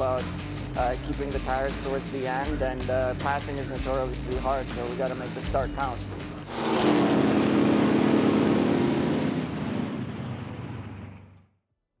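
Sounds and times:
low drone: 6.1 - 11.3
loud rushing roar: 6.4 - 11.4.

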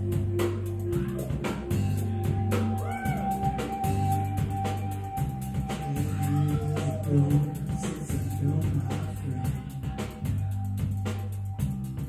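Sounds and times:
electric guitar: 0.0 - 11.1
bass guitar: 0.0 - 12.0.

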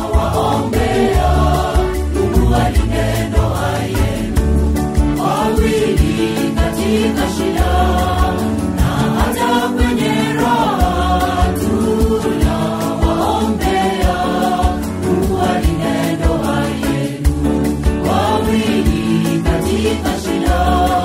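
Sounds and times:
backing track with beat and bass: 0.0 - 21.0
mixed choir singing gospel: 0.0 - 21.0.

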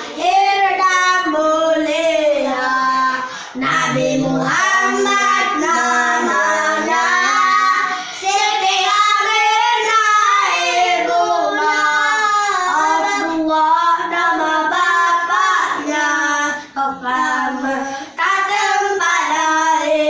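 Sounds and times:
young children singing: 0.0 - 20.0
man leading singing: 3.6 - 7.4.

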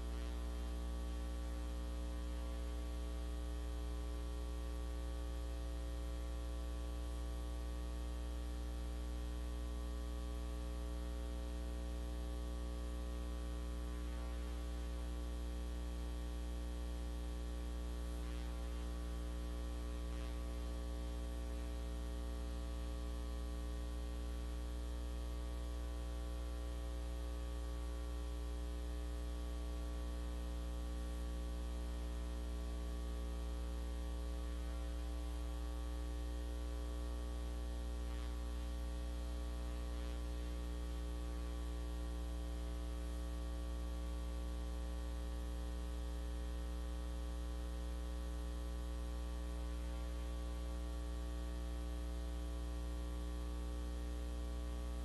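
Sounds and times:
electrical mains hum: 0.0 - 55.0.

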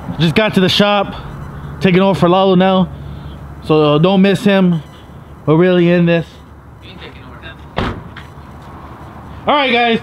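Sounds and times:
sharp thump: 7.7 - 8.3.

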